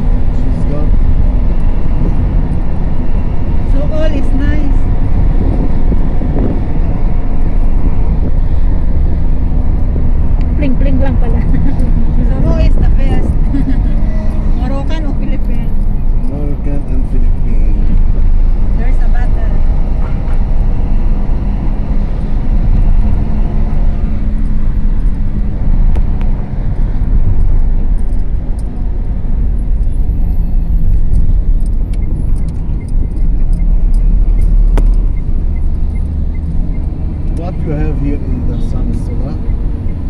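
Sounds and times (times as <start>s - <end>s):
car road noise rumble: 0.0s - 40.0s.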